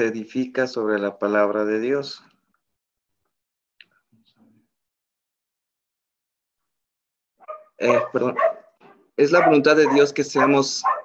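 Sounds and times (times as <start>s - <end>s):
dog barking: 7.4s - 11.0s.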